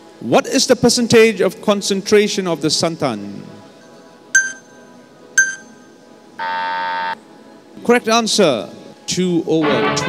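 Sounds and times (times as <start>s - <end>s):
short high pings: 4.4s - 5.9s
buzzer: 6.4s - 7.2s.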